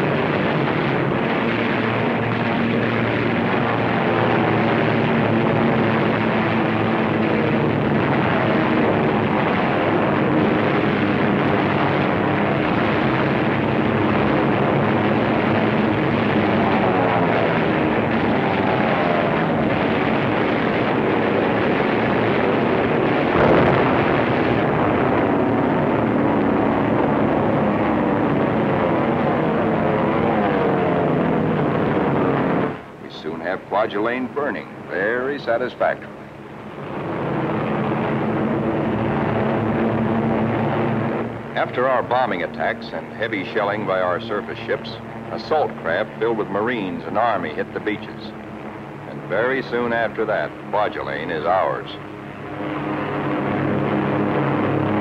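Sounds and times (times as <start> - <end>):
piston aircraft engines droning: 0.0 - 55.0
short sharp burst: 23.2 - 24.9.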